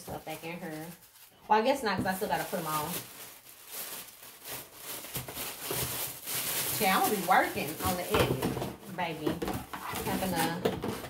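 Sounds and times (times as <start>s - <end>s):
tissue paper rustling: 0.0s - 11.0s.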